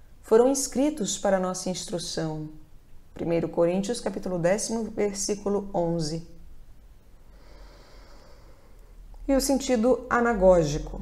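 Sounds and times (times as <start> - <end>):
faint breath through nose: 7.2 - 9.0.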